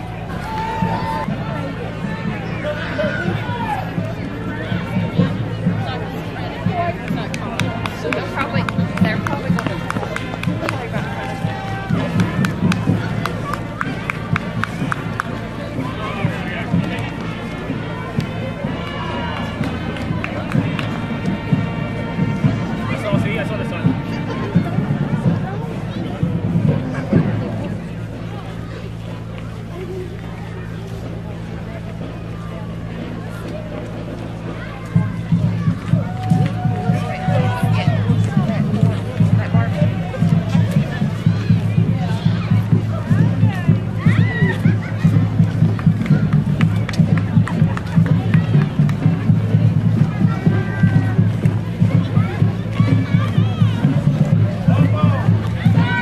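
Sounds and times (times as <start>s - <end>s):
crowd voices: 0.0s - 56.0s
drum beats: 0.0s - 56.0s
marching band playing: 0.0s - 56.0s
low brass sousaphones: 15.8s - 27.4s.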